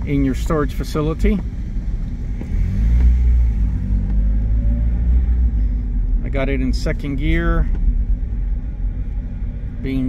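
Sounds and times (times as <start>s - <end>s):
car engine low drone: 0.0s - 10.0s.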